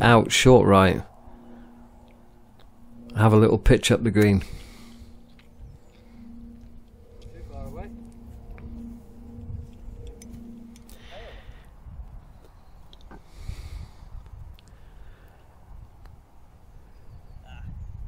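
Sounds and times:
low hum: 0.0 - 18.0
wind rumble on microphone: 0.0 - 18.0.

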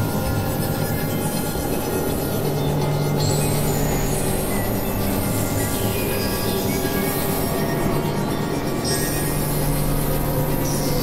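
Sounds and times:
layered music rumbling drone: 0.0 - 11.0.

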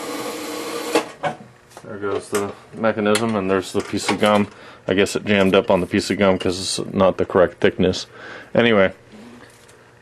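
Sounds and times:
vending mechanism whirring: 0.0 - 1.4.

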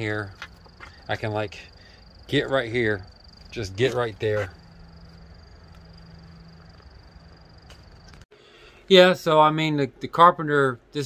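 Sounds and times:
crickets trilling: 0.0 - 8.2.

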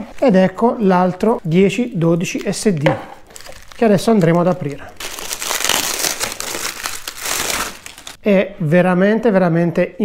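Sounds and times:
plastic wrapping crinkling: 0.0 - 8.2.

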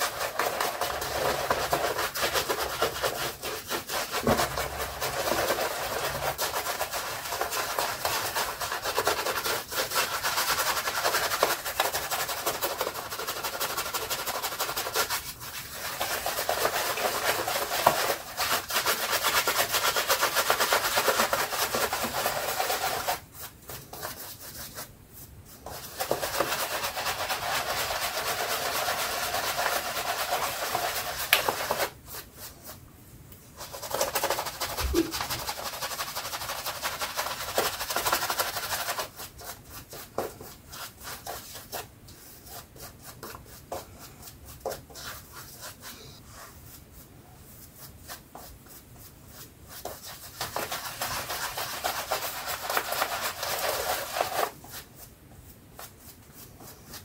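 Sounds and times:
shaving brush swishing lather: 0.0 - 32.8, 33.6 - 40.0, 43.7 - 57.0.

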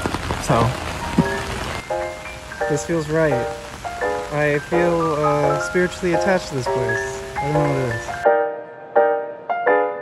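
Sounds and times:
heavy rain on umbrella: 0.0 - 8.2
background music: 0.0 - 10.0.

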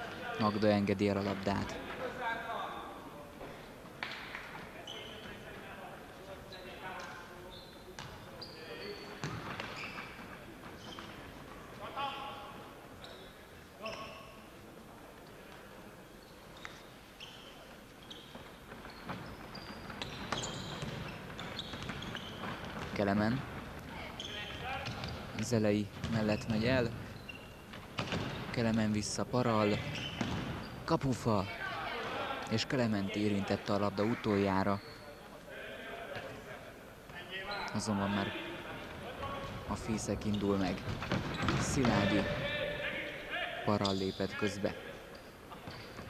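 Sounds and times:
players' voices in large hall: 0.0 - 46.0
shoe squeaks: 0.3 - 1.8, 4.8 - 5.5, 6.4 - 11.4, 13.0 - 14.5, 16.2 - 23.3, 23.9 - 31.0, 34.0 - 35.3, 37.4 - 38.4, 39.7 - 46.0.

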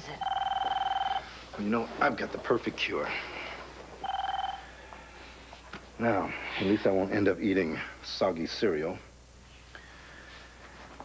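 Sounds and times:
desk telephone ringing: 0.0 - 1.4, 3.9 - 4.7.

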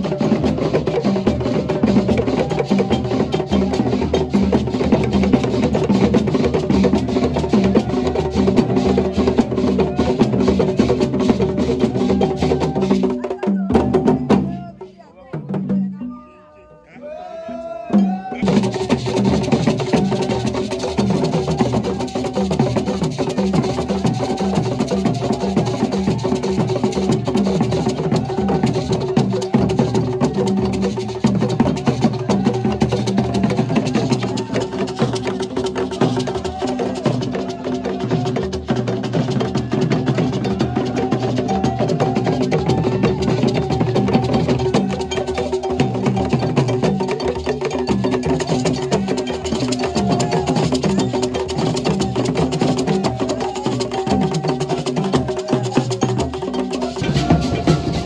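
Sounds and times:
drum and percussion music: 0.0 - 58.0.

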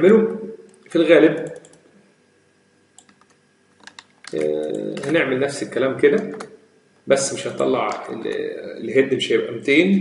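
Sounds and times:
keyboard keystrokes: 3.0 - 5.2.

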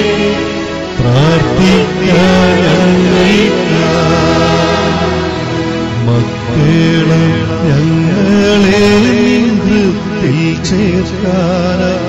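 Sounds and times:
hymn singing: 0.0 - 12.0
instrumental accompaniment: 0.0 - 12.0.

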